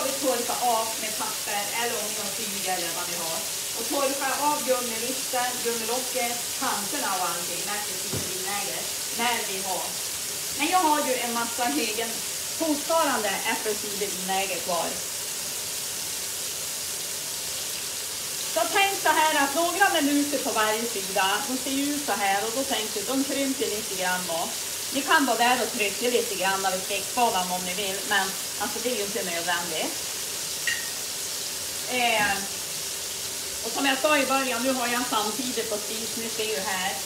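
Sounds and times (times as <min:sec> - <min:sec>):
woman's voice: 0:00.0 - 0:10.0, 0:10.6 - 0:15.0, 0:18.6 - 0:30.0, 0:31.9 - 0:32.5, 0:33.6 - 0:37.0
meat patties sizzling in oil: 0:00.0 - 0:37.0.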